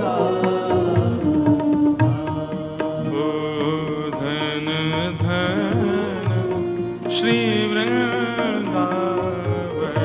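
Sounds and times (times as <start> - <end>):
instrumental accompaniment: 0.0 - 10.0
person singing devotional song: 0.0 - 10.0.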